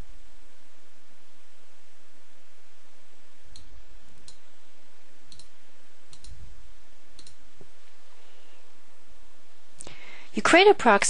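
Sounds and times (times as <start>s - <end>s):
computer mouse clicking: 3.5s - 4.4s, 5.3s - 6.4s, 7.2s - 7.4s.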